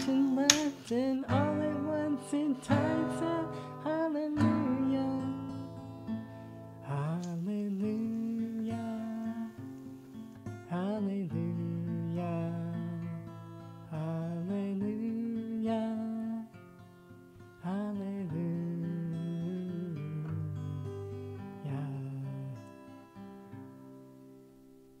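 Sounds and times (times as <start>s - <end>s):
man singing held notes: 0.0s - 5.3s, 6.9s - 9.5s
acoustic guitar strumming chords: 0.0s - 24.9s.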